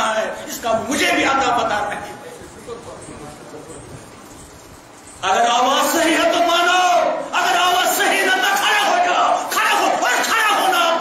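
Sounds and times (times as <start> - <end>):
man preaching loudly: 0.0 - 2.2, 5.2 - 11.0.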